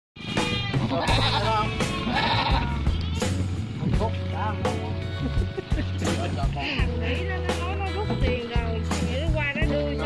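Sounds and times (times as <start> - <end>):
young goats bleating: 0.2 - 3.6
background music with steady beat: 0.2 - 10.0.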